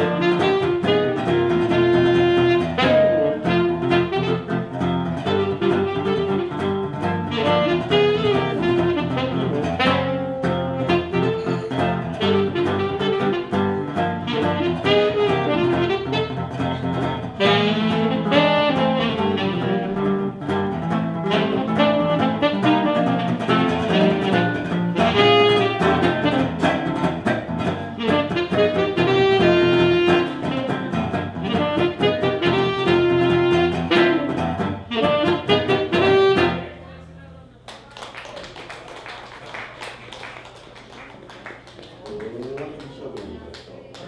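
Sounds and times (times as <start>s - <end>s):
strummed guitar chords: 0.0s - 36.8s
tenor saxophone jazz melody: 0.0s - 37.2s.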